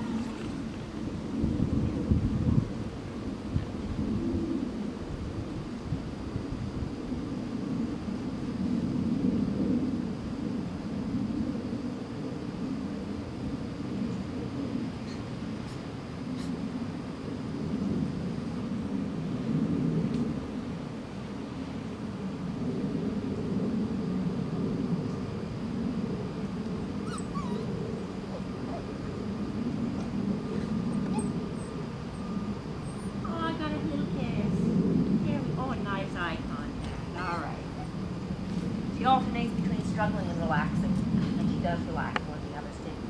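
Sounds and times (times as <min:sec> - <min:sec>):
steady low rumble: 0:00.0 - 0:43.0
puppy whimpering and whining: 0:27.0 - 0:28.9, 0:30.5 - 0:33.2, 0:37.7 - 0:38.0.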